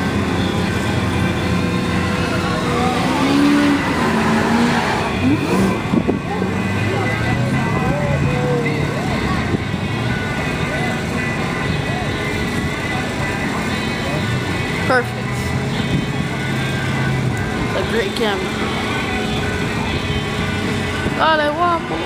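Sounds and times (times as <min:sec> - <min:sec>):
car engines running: 0:00.0 - 0:22.0
crowd voices: 0:00.0 - 0:22.0.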